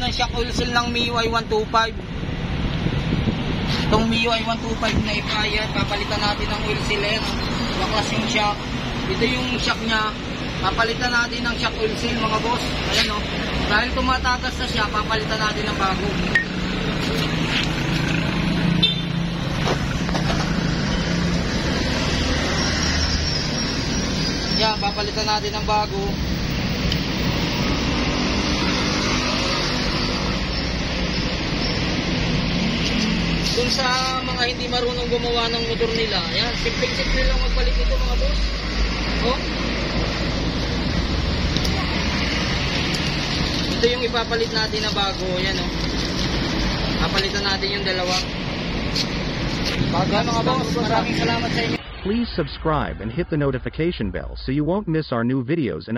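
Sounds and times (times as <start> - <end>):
street traffic: 0.0 - 55.9.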